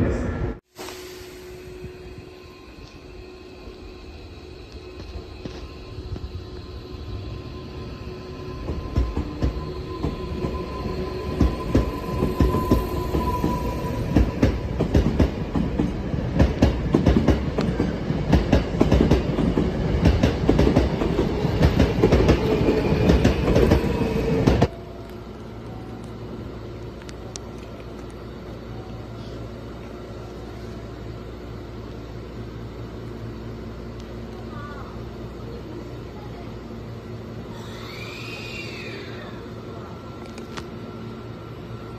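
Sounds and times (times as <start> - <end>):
train whine: 0.0 - 41.9
electric train running: 0.8 - 41.9.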